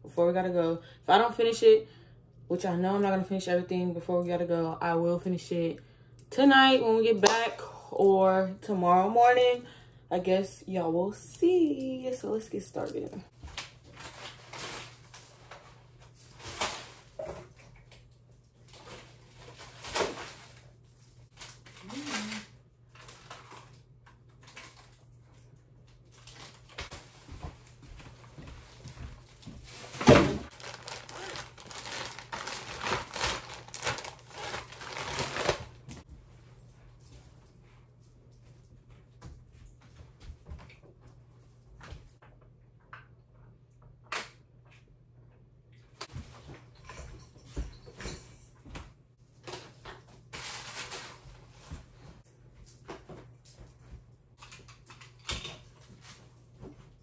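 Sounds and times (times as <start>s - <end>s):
plastic bag rustling: 13.0s - 17.2s, 18.7s - 23.8s, 26.1s - 36.0s, 49.7s - 52.2s
items knocking into bag: 29.9s - 35.7s.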